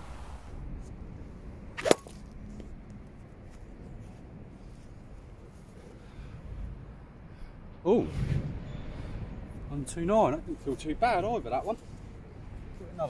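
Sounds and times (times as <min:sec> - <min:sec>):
steady low background noise: 0:00.0 - 0:13.0
golf club striking ball: 0:01.8 - 0:02.3.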